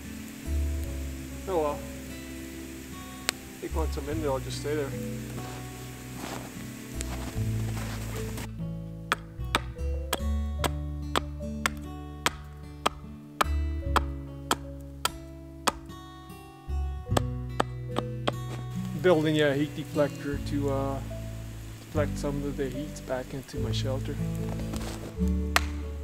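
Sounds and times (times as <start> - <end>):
acoustic guitar music: 0.0 - 26.0
hatchet chopping wood: 9.1 - 15.9, 17.1 - 18.6, 25.6 - 25.8.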